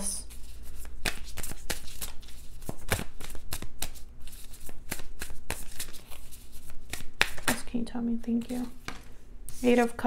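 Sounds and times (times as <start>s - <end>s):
cards being shuffled: 0.3s - 7.7s.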